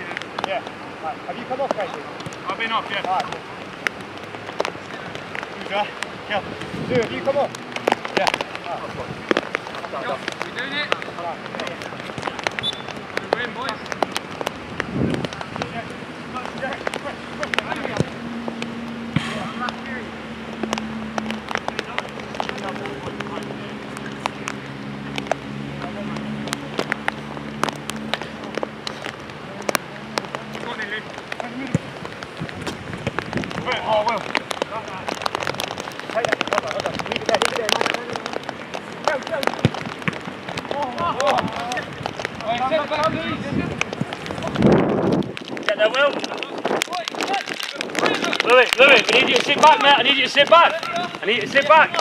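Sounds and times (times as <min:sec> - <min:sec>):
steady crackling noise: 0:00.0 - 0:52.0
players shouting: 0:47.0 - 0:52.0.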